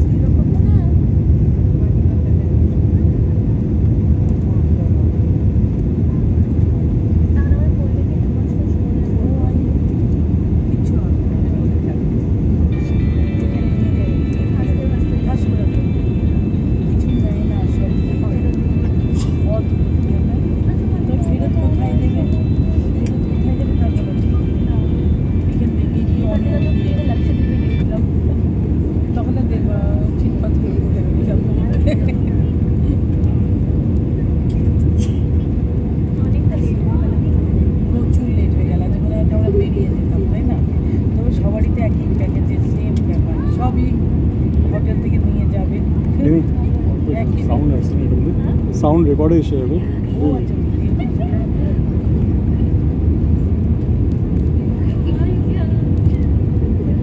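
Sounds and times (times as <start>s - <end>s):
jet airliner cabin roar: 0.0s - 57.0s
high steady whine: 5.4s - 57.0s.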